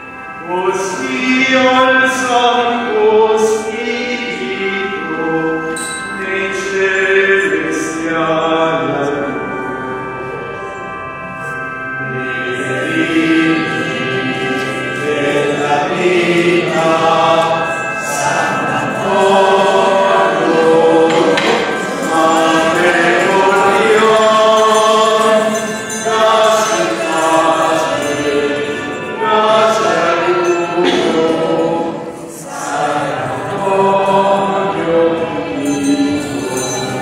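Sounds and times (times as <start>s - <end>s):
crowd singing a hymn: 0.0s - 37.0s.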